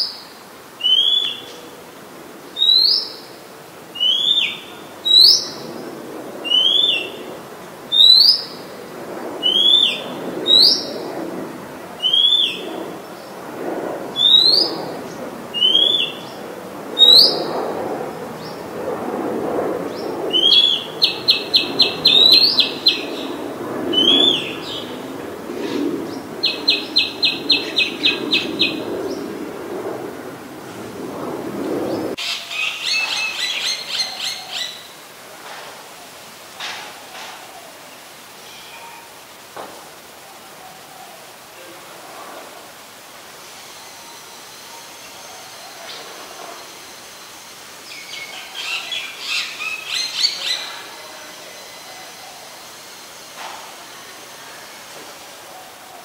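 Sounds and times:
bird singing: 0.8s - 1.7s, 2.6s - 3.3s, 4.0s - 5.7s, 6.4s - 7.3s, 7.9s - 8.7s, 9.4s - 11.0s, 12.0s - 13.4s, 14.2s - 17.6s, 19.9s - 25.2s, 26.0s - 29.4s.

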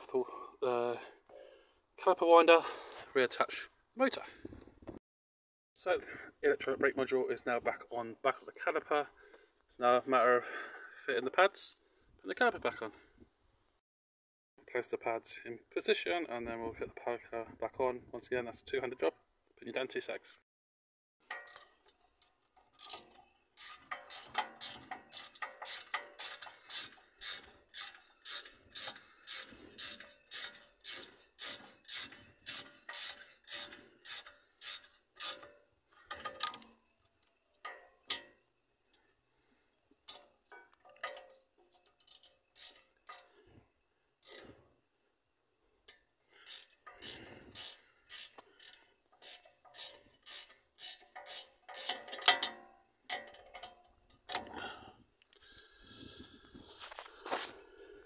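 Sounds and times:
ratchet wrench clicking: 21.3s - 21.7s, 22.8s - 36.6s, 41.8s - 43.3s, 44.2s - 44.5s, 45.9s - 52.5s.

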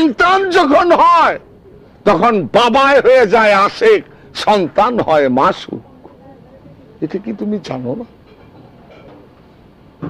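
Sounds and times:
faint voices: 0.0s - 8.9s
faint background noise: 0.0s - 10.0s.

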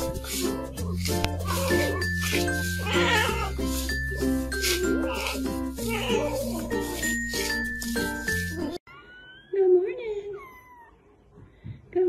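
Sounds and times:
kittens mewing: 1.0s - 9.6s.

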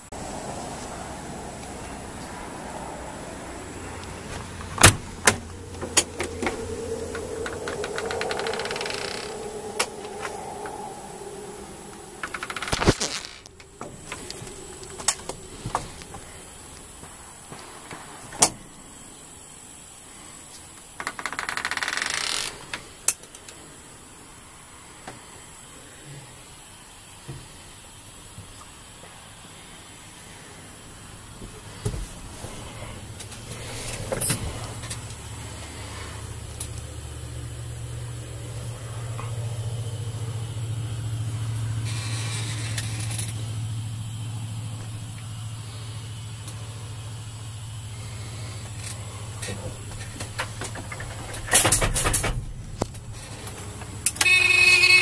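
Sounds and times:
loud rushing noise: 0.0s - 17.4s
diesel engine idling: 0.0s - 17.9s, 26.3s - 55.0s.

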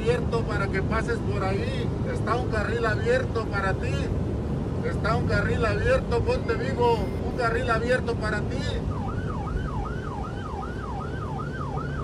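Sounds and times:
engine and road rumble: 0.0s - 12.0s
siren yelping: 6.2s - 7.8s.

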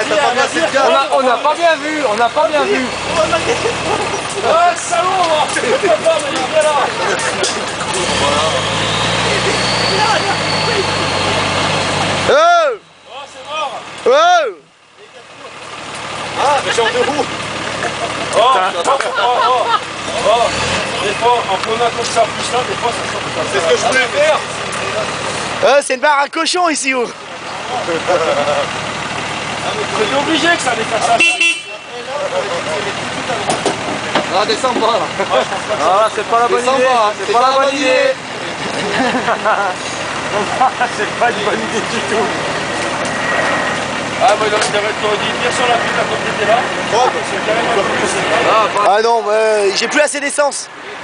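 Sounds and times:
engine running: 0.0s - 51.0s
voices: 0.0s - 51.0s.

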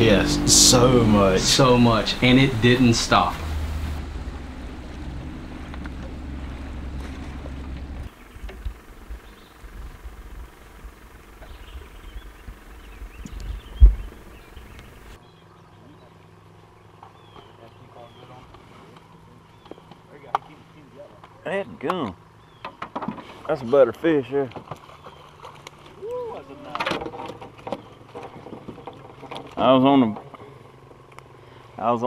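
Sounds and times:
low hum: 0.0s - 17.4s
birds chirping: 0.0s - 32.0s.

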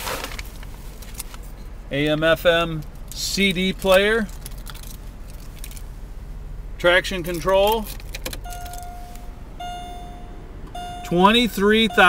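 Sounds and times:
dashboard warning chime: 8.4s - 12.0s.

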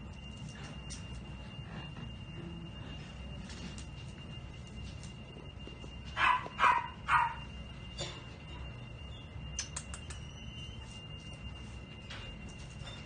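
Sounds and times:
dog barking: 6.2s - 7.5s.

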